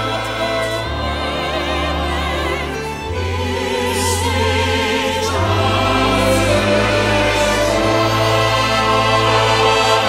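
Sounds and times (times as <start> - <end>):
choir and orchestra: 0.0 - 10.0.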